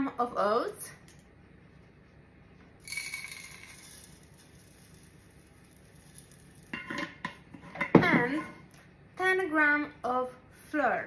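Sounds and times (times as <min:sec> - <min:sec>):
oats pouring into plastic cup: 0:02.8 - 0:06.7.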